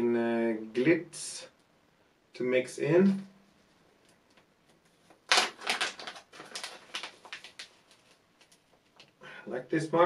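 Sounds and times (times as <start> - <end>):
plastic packet crinkling and rustling: 5.0 - 9.1.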